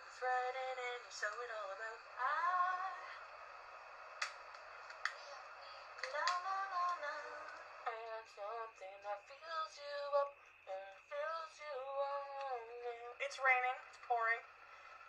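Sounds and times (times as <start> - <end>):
woman singing unaccompanied: 0.0 - 3.2, 5.2 - 14.4.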